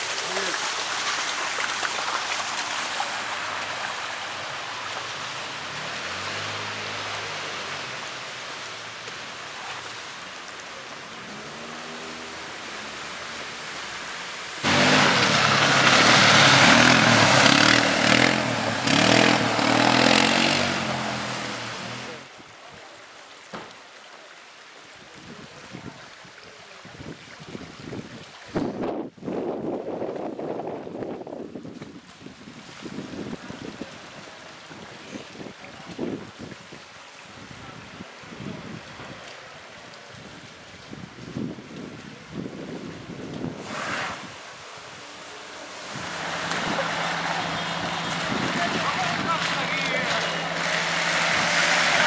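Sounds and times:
vehicle engine: 3.0s - 10.0s, 10.7s - 22.4s, 45.2s - 52.0s.

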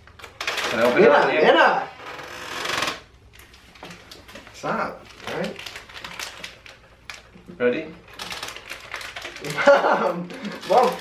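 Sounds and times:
jelly beans rattling in a box: 4.5s - 7.3s, 8.0s - 11.0s
person speaking: 9.4s - 11.0s.

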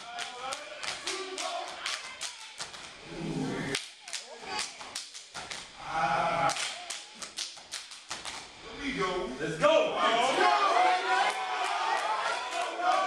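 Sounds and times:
people shouting: 10.0s - 13.0s.

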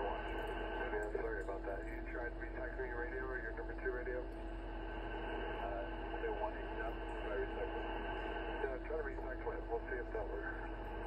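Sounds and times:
radio voice transmission: 0.0s - 4.3s, 4.9s - 11.0s
steady low hum: 0.0s - 11.0s
radio static: 4.9s - 11.0s.

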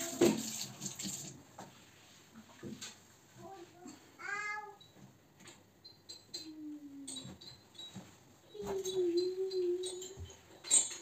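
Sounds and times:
dishes clinking: 6.0s - 11.0s.

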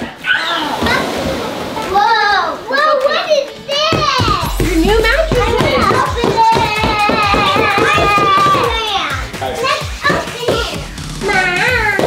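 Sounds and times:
excited children's voices: 1.8s - 12.0s
background music with steady beat: 3.1s - 12.0s.

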